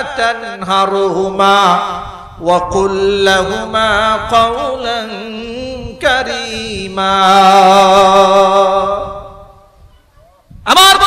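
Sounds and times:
man chanting melodically: 0:00.0 - 0:09.7, 0:10.6 - 0:11.0.

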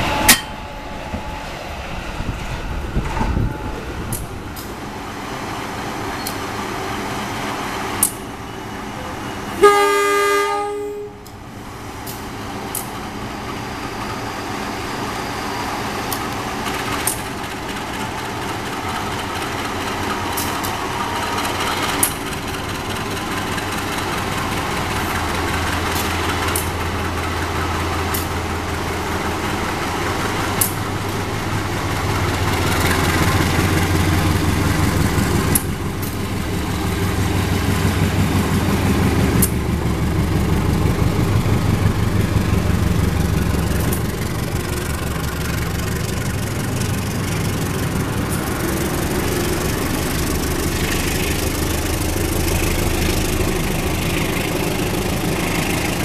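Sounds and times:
locomotive engine drone: 0:00.0 - 0:56.0.

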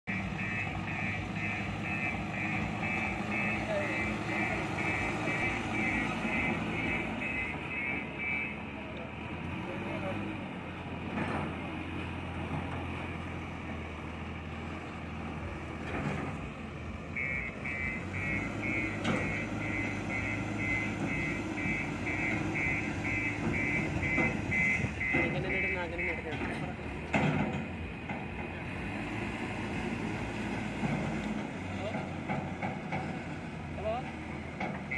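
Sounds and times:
diesel engines running: 0:00.0 - 0:34.9
reversing alarm beeping: 0:00.1 - 0:08.6, 0:17.1 - 0:26.3.

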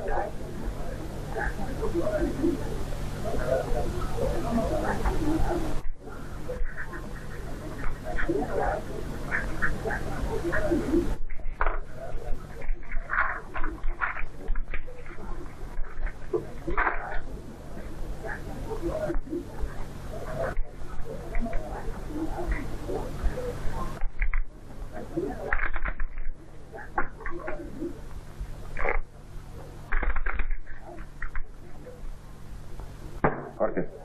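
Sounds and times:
steady low hum: 0:00.0 - 0:34.0
voices murmuring: 0:00.0 - 0:34.0.

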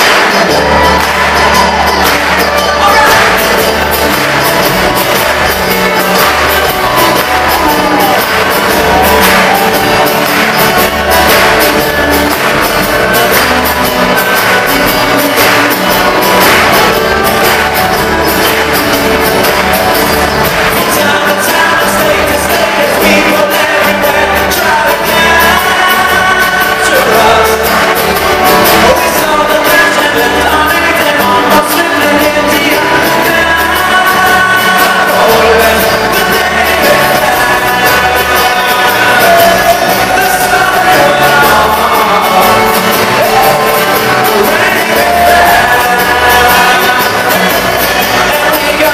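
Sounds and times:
acoustic guitar: 0:00.0 - 0:48.9
banjo: 0:00.0 - 0:48.9
person singing: 0:00.0 - 0:48.9
upright bass: 0:00.0 - 0:48.9.

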